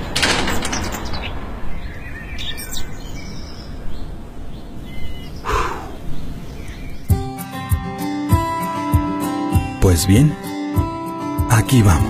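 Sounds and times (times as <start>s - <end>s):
outdoor background noise: 0.0s - 7.4s
birds chirping: 0.0s - 8.2s.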